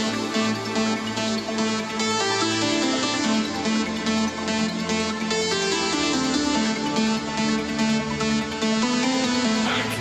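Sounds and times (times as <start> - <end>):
electronic dance music on synthesizers: 0.0 - 10.0.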